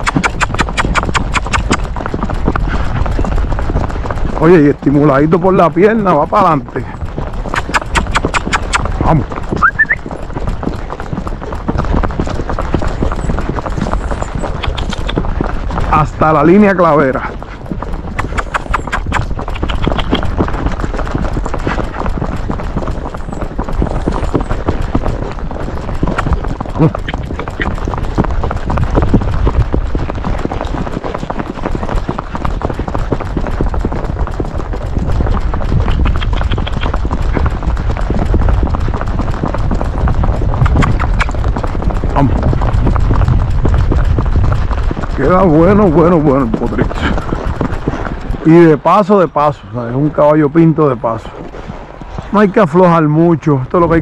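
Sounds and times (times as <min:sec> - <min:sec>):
horse hooves on asphalt: 0:00.0 - 0:54.0
low rumble: 0:34.6 - 0:45.7.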